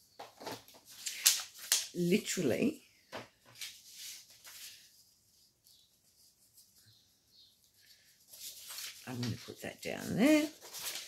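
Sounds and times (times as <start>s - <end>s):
paper rustling and crackling: 0.2s - 2.4s, 3.2s - 6.9s, 7.6s - 11.0s.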